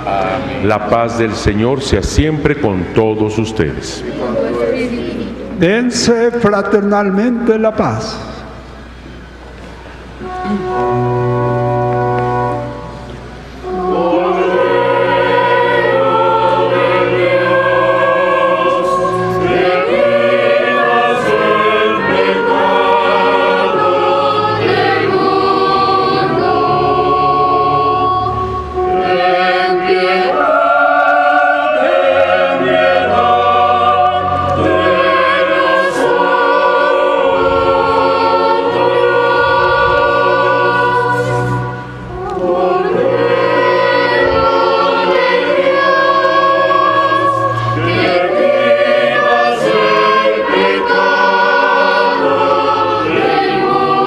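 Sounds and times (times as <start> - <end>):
steady low accompaniment: 0.0 - 54.0
church choir chanting: 10.0 - 54.0.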